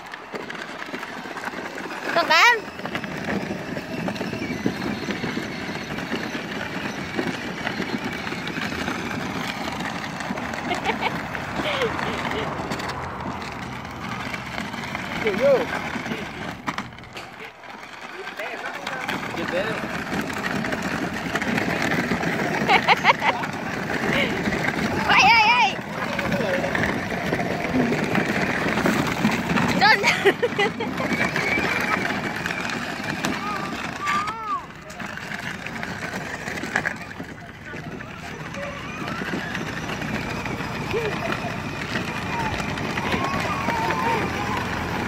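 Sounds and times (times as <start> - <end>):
toy car wheels crunching gravel: 0.0 - 45.0.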